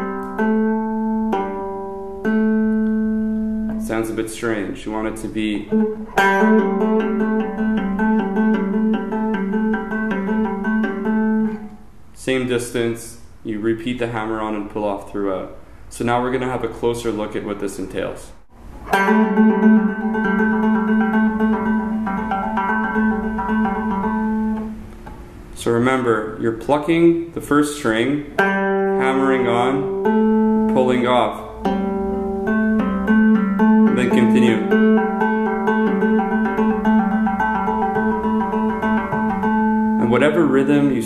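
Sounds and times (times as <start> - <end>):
electric guitar trill: 5.6 - 11.9, 18.6 - 24.9, 28.3 - 41.0.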